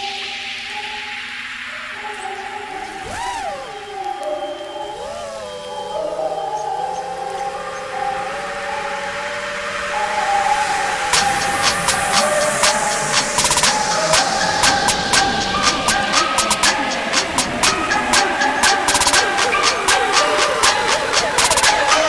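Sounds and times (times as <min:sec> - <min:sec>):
drone motors whining: 0:01.8 - 0:22.0.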